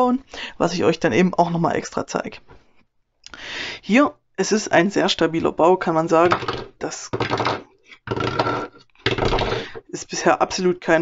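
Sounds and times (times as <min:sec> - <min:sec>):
plastic clattering on wood: 0:06.2 - 0:09.9.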